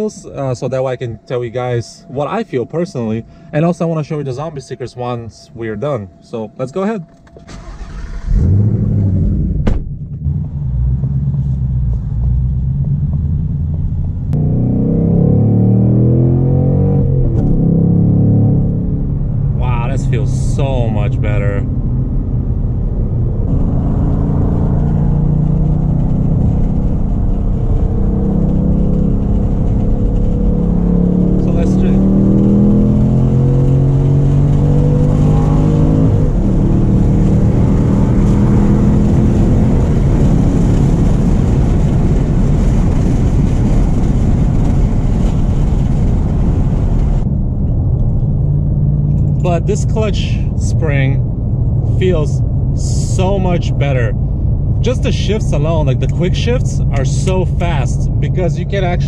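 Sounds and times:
car engine accelerating through gears: 7.4s - 59.0s.

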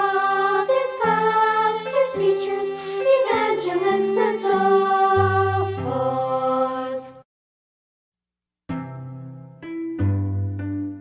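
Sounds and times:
piano chord: 8.7s - 11.0s.

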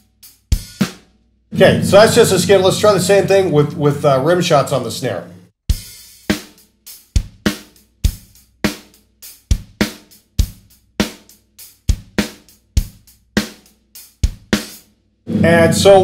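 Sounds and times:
hi-hat: 0.0s - 1.0s, 5.7s - 14.9s.

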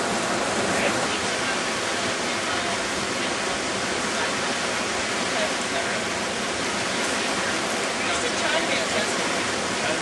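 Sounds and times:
water rushing among rocks: 0.0s - 10.0s.

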